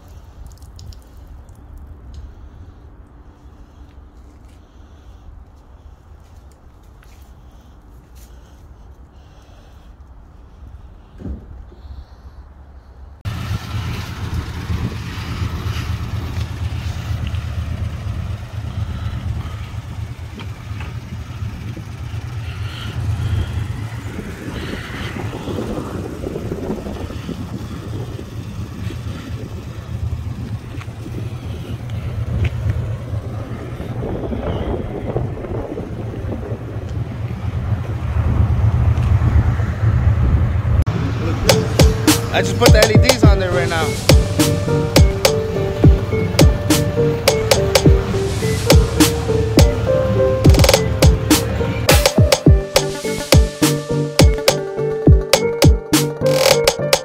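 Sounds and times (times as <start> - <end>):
car engine running: 13.3 - 34.4, 39.9 - 57.0.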